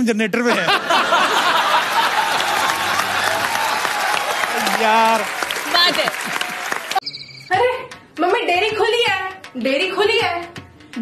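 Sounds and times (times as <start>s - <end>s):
audience laughing: 0.5s - 3.7s
audience applauding: 1.0s - 7.0s
voice rising above applause: 2.2s - 7.0s.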